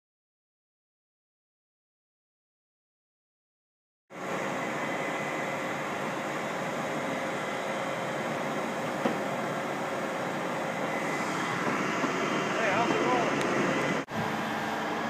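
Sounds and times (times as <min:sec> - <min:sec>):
outdoor background noise: 0:04.1 - 0:15.0.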